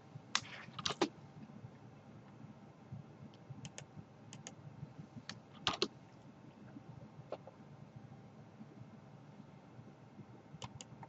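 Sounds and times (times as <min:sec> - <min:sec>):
mouse and keyboard clicks: 0:05.3 - 0:05.9, 0:10.6 - 0:11.0.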